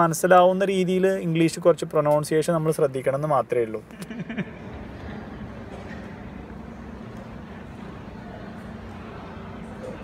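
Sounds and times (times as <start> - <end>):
low room rumble and hum: 0.0 - 10.0.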